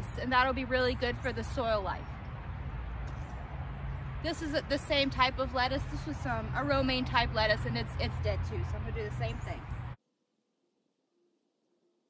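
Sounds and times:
outdoor background rumble: 0.0s - 10.0s.

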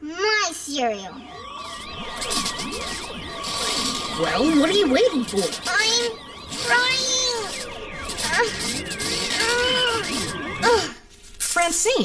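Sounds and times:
wavering electronic tone: 0.0s - 11.0s
swooping electronic glides: 0.4s - 10.9s
steady hum: 0.7s - 11.0s.

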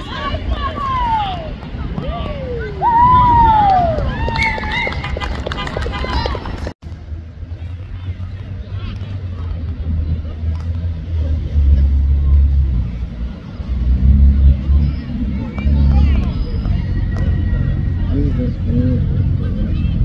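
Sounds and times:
faint spectators' voices: 0.0s - 20.0s.

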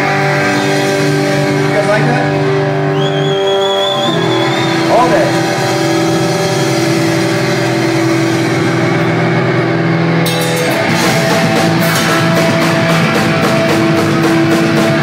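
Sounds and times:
electric guitar droning chords: 0.0s - 15.0s
thin wavering high whistle: 2.9s - 7.6s.

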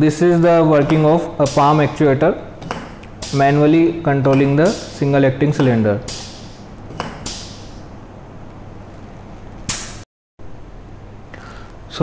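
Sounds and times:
compressed air hissing: 1.4s - 2.0s, 2.6s - 3.7s, 4.3s - 5.2s, 6.0s - 8.0s.

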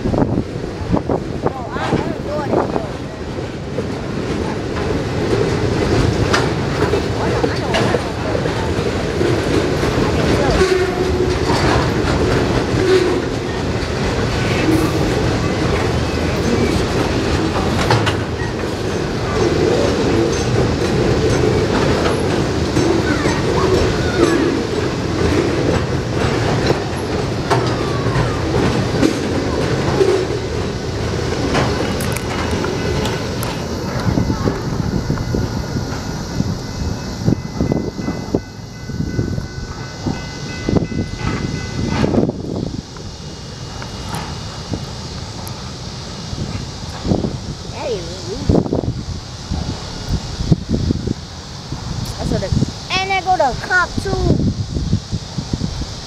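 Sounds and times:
train wheels rumbling on rails: 0.0s - 56.0s
wheels clicking over rail joints: 0.2s - 54.1s.

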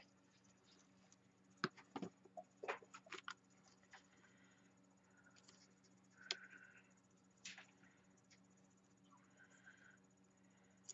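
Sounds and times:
room hum: 0.0s - 10.9s.

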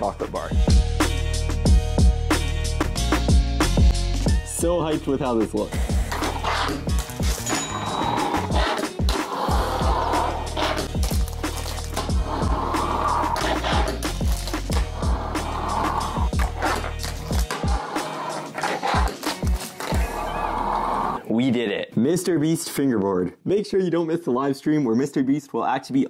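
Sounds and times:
background music with steady bass: 0.0s - 22.3s
fingerboard wheels clacking and rolling: 5.9s - 21.0s.

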